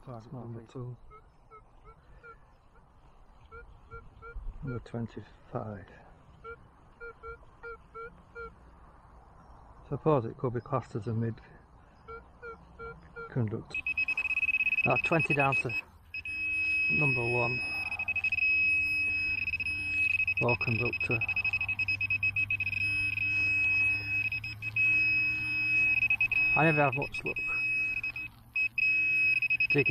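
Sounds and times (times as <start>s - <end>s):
metal detector beeps: 12.1s - 29.9s.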